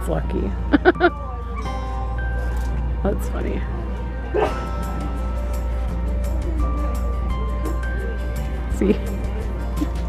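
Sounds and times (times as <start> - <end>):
shop background music: 0.0 - 10.0.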